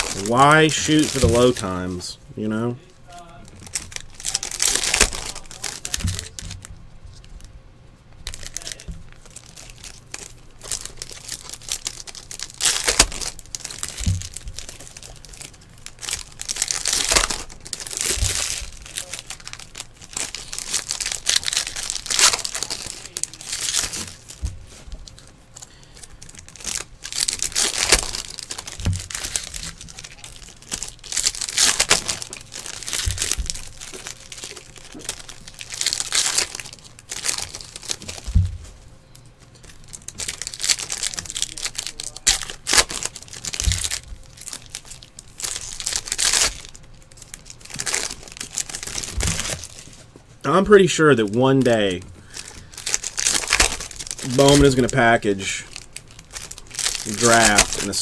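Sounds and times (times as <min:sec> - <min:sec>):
foil wrappers crinkling and tearing: 0:00.0 - 0:07.5, 0:08.1 - 0:58.0.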